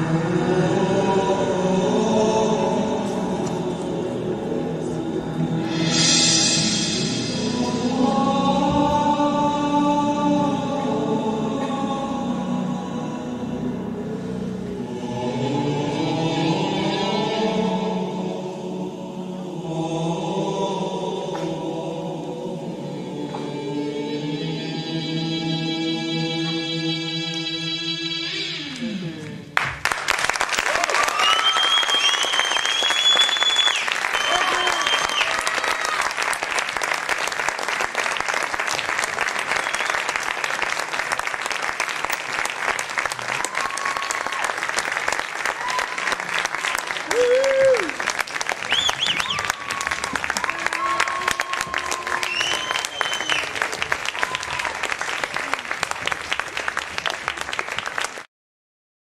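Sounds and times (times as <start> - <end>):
audience clapping: 29.2 - 58.3
audience whooping and shouting: 30.6 - 36.4, 43.2 - 55.8.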